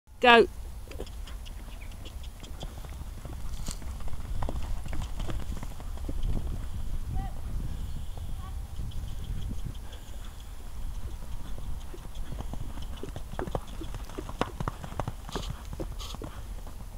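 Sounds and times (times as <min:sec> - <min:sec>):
steady low rumble: 0:00.5 - 0:16.0
hooves drumming on soft turf: 0:00.9 - 0:16.9.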